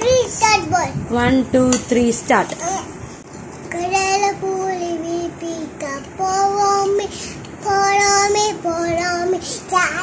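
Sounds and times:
girl singing: 0:03.6 - 0:10.0.

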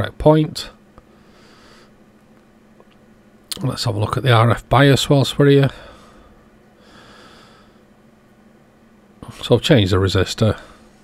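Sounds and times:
faint steady hum: 0:00.0 - 0:11.0
person breathing out through nose: 0:05.7 - 0:07.8.

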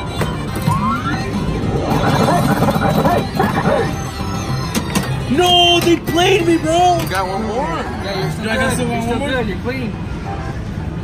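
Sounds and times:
arcade noise: 0:00.0 - 0:06.8
pinball machine music and effects: 0:00.2 - 0:05.3
rising electronic tone: 0:00.7 - 0:04.1.

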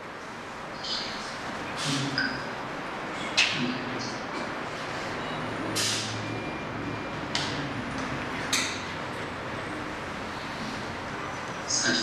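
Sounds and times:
room noise: 0:00.0 - 0:12.0.

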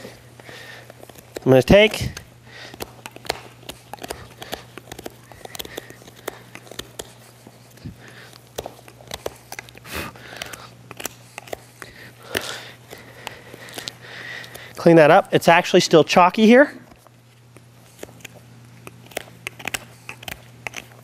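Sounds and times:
hoof nippers crunching hoof: 0:00.0 - 0:14.7.

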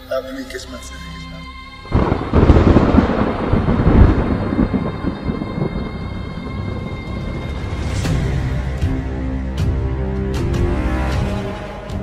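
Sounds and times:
thunder rumble: 0:01.8 - 0:11.1.

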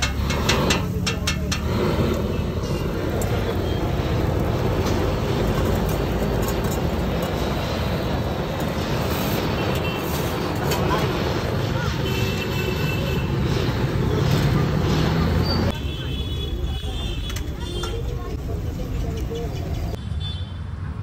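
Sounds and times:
gas blowtorch burning: 0:00.0 - 0:20.0.

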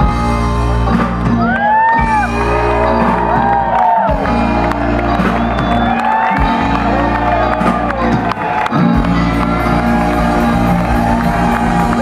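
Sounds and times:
live band music: 0:00.0 - 0:12.0
audience whooping and shouting: 0:01.3 - 0:12.0.

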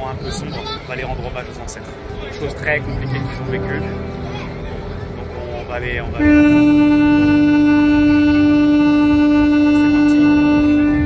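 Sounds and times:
ship's horn blast: 0:02.4 - 0:11.0.

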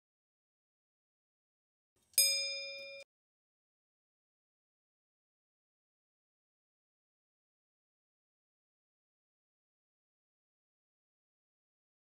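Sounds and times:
bell ding ringing: 0:02.2 - 0:03.1.

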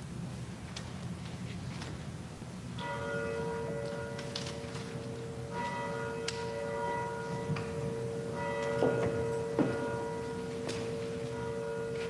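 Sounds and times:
soft pipe organ music: 0:02.4 - 0:12.0.

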